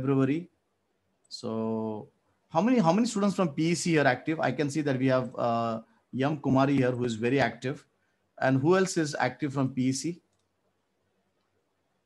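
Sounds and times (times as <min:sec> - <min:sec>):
man speaking: 0:00.0 - 0:00.5, 0:01.3 - 0:10.3.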